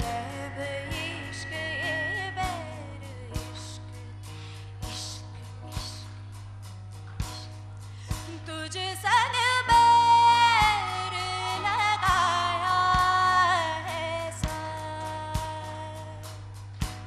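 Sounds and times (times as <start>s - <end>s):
woman singing: 0.0s - 4.3s, 8.2s - 16.4s
low drone: 0.0s - 8.1s
accompaniment beats: 0.0s - 8.5s, 9.6s - 17.0s.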